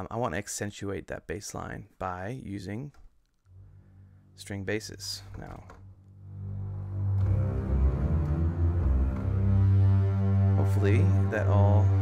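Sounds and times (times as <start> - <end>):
bowed string basses: 3.5 - 12.0.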